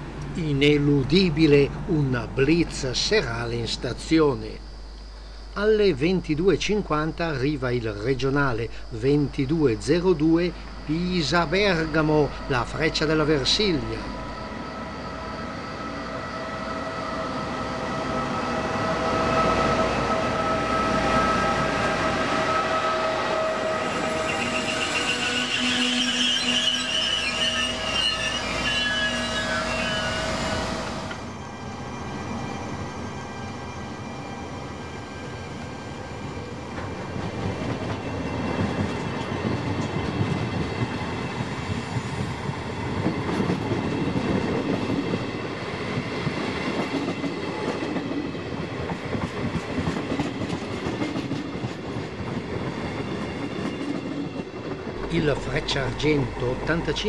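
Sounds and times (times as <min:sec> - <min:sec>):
train rail rumble and wheel clatter: 0:00.0 - 0:57.0
high squealing tones: 0:20.6 - 0:30.8.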